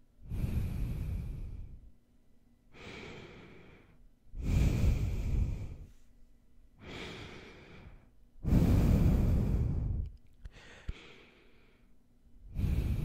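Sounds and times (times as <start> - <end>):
nasal breathing into microphone: 0.2 - 1.8, 2.8 - 6.0, 6.8 - 11.8, 12.5 - 13.0.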